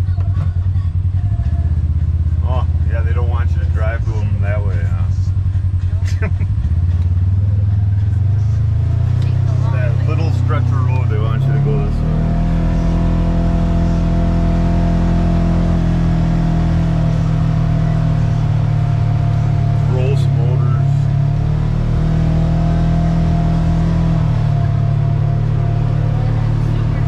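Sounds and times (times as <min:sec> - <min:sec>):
vehicle engine from inside cab: 0:00.0 - 0:27.0.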